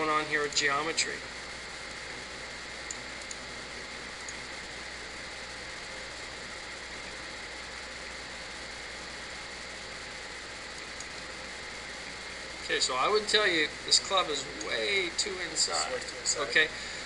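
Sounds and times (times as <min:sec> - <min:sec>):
steady background hiss: 0:00.0 - 0:17.0
faint clicks: 0:02.8 - 0:03.4.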